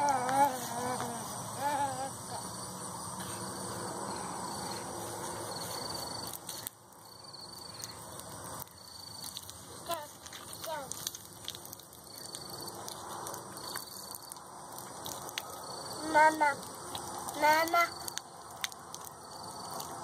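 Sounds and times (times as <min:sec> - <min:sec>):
insects chirping in high trills: 0:00.0 - 0:20.0.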